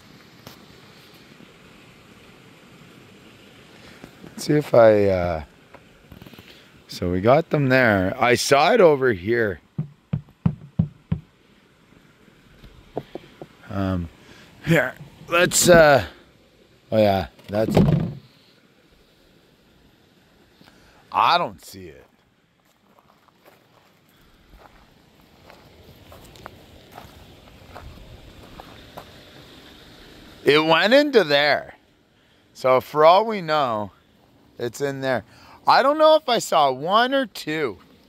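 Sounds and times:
short dull knocks: 9.8 - 11.3, 12.9 - 13.6
footsteps on gravel: 22.6 - 29.2.

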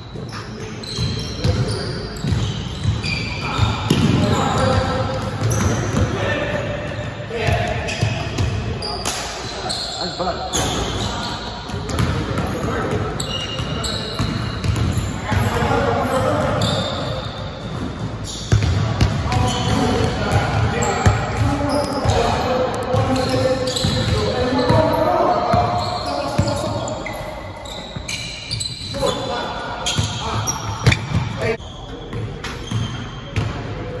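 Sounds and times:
sneaker squeaks: 0.0 - 33.6.

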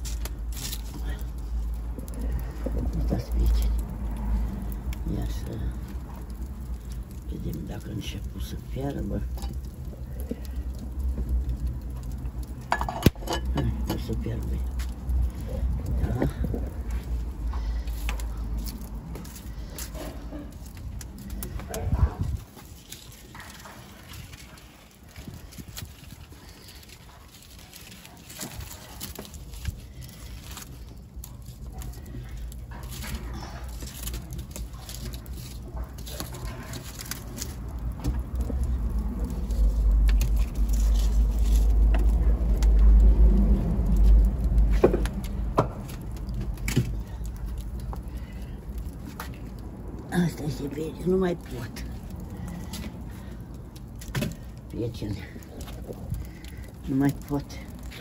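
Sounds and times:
wood fire crackling: 0.0 - 58.0
low rumble: 36.4 - 50.9.

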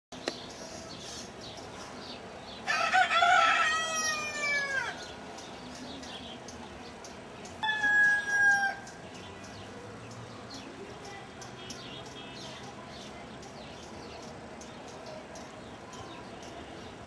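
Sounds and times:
rooster crowing: 2.7 - 5.0, 7.6 - 8.8.

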